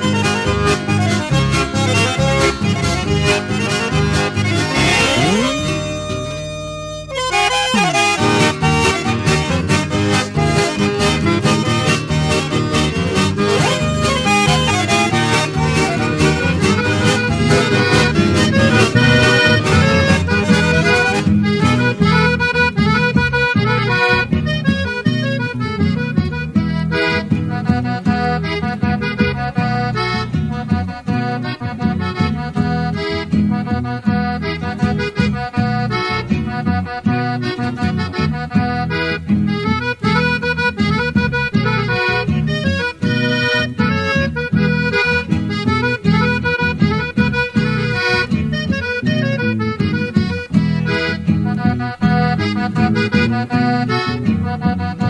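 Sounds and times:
accordion music with rhythmic beat: 0.0s - 55.0s.

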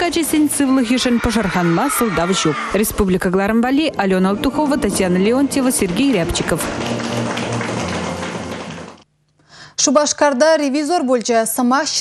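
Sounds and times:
room noise: 0.0s - 9.6s
clapping: 5.8s - 9.0s.

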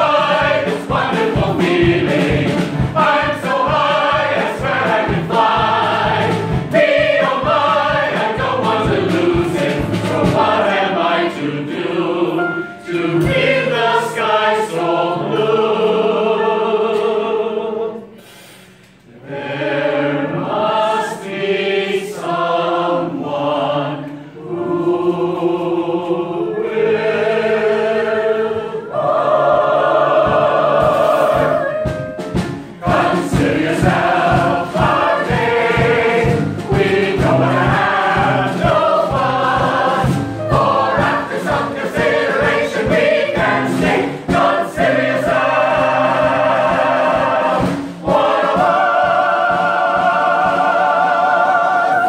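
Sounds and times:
steady beat: 0.0s - 10.8s, 29.2s - 51.0s
mixed choir singing in harmony: 0.0s - 52.0s.

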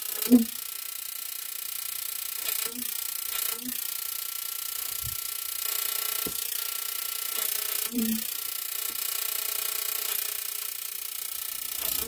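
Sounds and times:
high electrical buzz: 0.0s - 12.0s
sharp electrical crackles: 7.4s - 8.3s.

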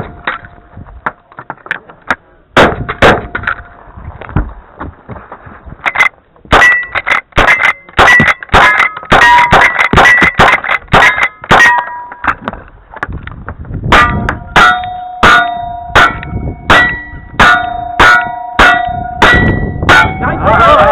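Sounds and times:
steel target clanging: 5.9s - 12.4s, 13.9s - 20.8s.

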